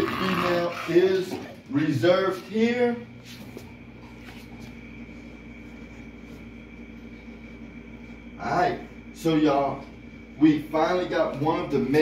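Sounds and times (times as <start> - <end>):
electrical appliance humming: 0.0 - 12.0.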